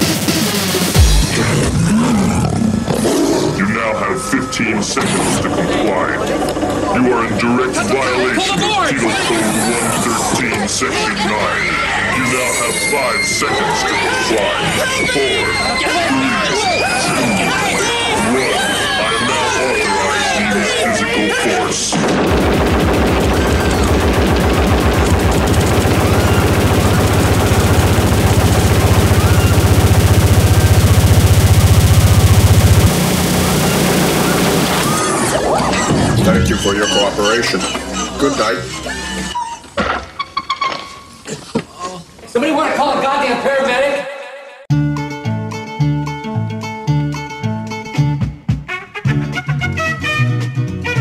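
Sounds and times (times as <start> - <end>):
hardcore dance music: 0.0 - 1.7, 22.3 - 35.0
roar-like sample: 22.3 - 35.2.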